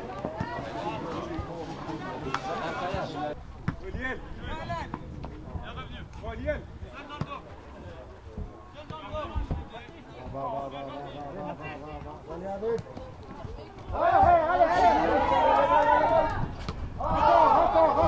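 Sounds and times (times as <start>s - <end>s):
players shouting: 13.7s - 18.0s.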